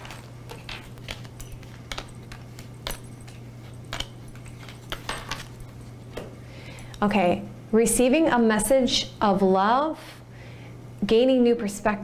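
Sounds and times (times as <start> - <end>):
cards snapping onto table: 0.0 - 5.6.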